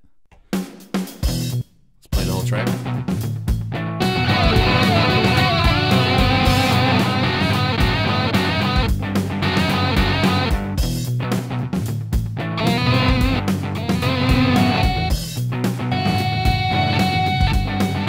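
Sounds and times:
electric guitar jam with beat: 0.3s - 18.0s
sampled guitar phrase slices: 4.0s - 10.6s, 12.5s - 18.0s.

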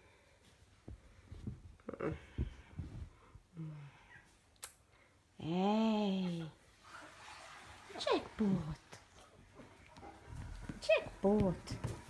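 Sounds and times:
kittens scuffling: 6.8s - 12.0s.

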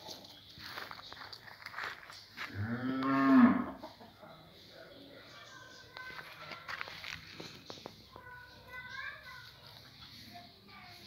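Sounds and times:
cow mooing: 2.5s - 3.8s.

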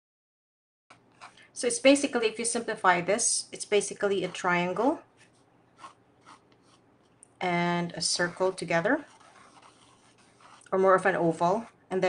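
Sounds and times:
pencil scratching on paper: 4.2s - 6.9s, 8.0s - 11.8s.

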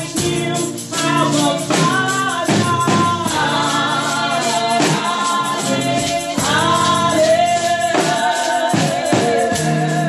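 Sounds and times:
keyboard chords: 0.0s - 10.0s
tambourine shaken: 0.0s - 10.0s
woman singing gospel song: 0.0s - 10.0s.

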